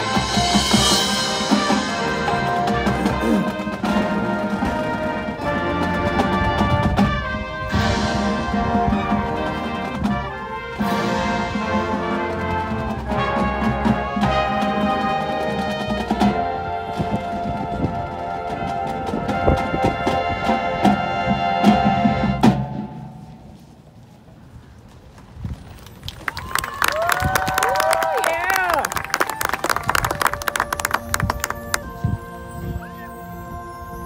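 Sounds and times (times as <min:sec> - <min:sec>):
marching band playing: 0:00.0 - 0:23.8, 0:27.8 - 0:34.0.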